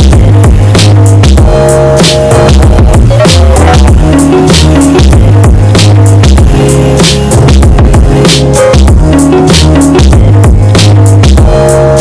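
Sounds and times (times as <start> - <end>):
electronic dance music with heavy bass: 0.0 - 12.0.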